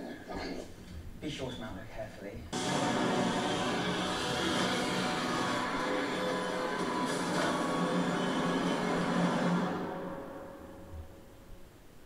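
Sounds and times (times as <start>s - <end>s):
dense rushing noise: 2.6s - 10.3s
music with low sustained tones: 2.6s - 11.7s.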